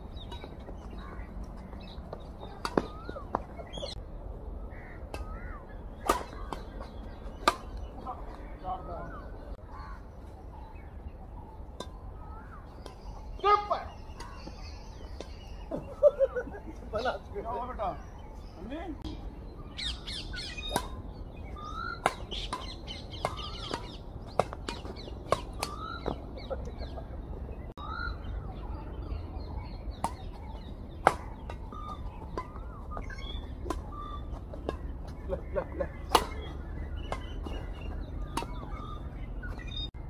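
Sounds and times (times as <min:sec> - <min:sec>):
birds chirping: 0:00.0 - 0:40.0
rackets striking shuttlecock: 0:01.4 - 0:04.0, 0:05.1 - 0:08.0, 0:11.7 - 0:15.7, 0:20.7 - 0:26.4, 0:29.9 - 0:39.7
person laughing: 0:15.7 - 0:17.0, 0:26.4 - 0:27.4, 0:35.3 - 0:36.2.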